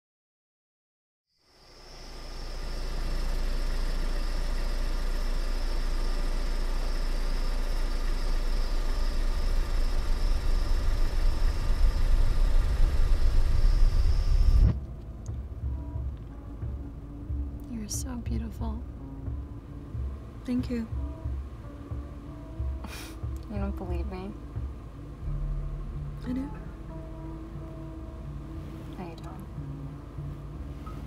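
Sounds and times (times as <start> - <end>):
car engine rumbling: 1.5 - 31.0.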